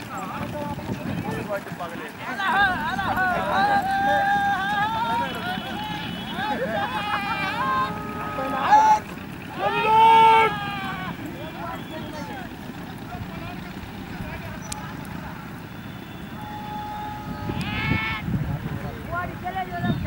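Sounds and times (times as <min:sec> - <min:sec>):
people calling out loudly: 0:00.0 - 0:20.0
steady outdoor noise: 0:00.0 - 0:20.0.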